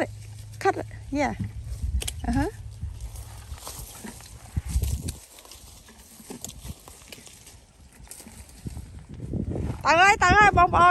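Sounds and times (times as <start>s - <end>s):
wind rumble on microphone: 0.8s - 10.9s.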